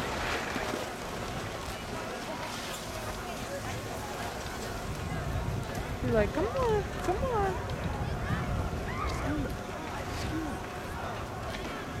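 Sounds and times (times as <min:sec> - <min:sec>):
faint distant voices: 0:00.0 - 0:12.0
low outdoor rumble: 0:00.0 - 0:12.0.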